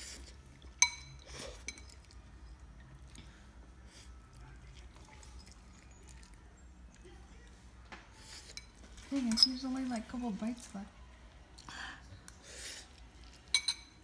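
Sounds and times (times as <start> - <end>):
faint eating sounds: 0.0 - 14.0
fork clinking against bowl: 0.8 - 2.2, 13.4 - 14.0.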